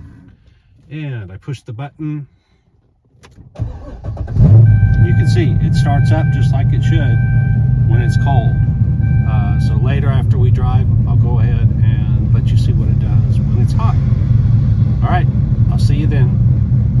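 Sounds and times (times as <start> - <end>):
car engine idling: 2.4 - 17.0.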